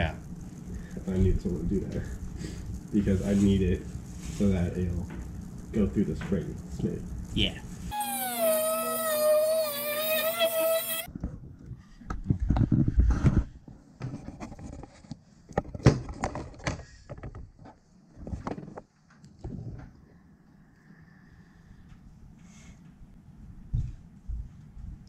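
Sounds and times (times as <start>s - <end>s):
rotary tool cutting metal tube: 7.9s - 11.1s.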